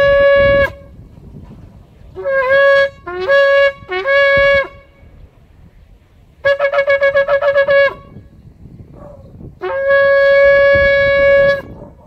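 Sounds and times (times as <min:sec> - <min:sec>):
shofar blast: 0:00.0 - 0:01.0, 0:02.1 - 0:05.2, 0:06.4 - 0:08.3, 0:09.6 - 0:11.8.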